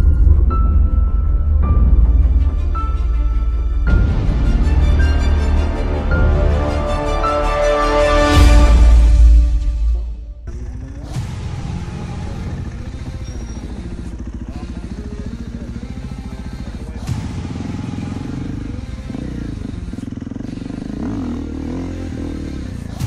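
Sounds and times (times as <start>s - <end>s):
dirt bike engines revving: 10.4s - 23.0s.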